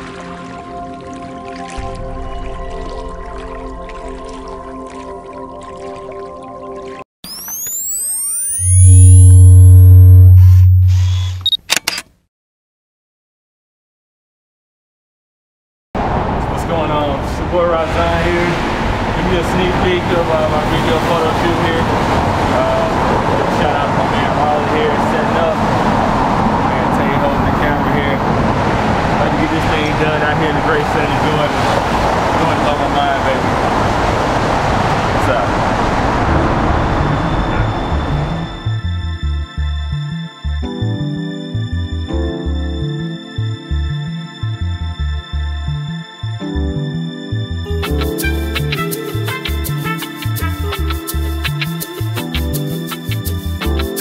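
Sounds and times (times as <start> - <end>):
deep steady low tone: 1.7 - 5.9, 7.4 - 11.4, 36.2 - 45.9
traffic noise: 16.0 - 39.0
rising swooshing glides: 20.7 - 39.3.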